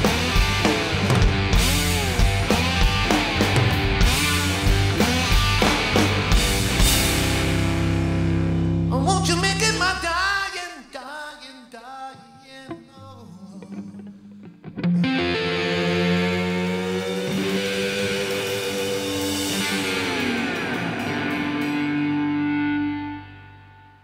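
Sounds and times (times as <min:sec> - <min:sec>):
rock band playing live: 0:00.0 - 0:10.1, 0:14.0 - 0:24.0
distorted electric guitar: 0:00.0 - 0:10.5, 0:12.7 - 0:24.0.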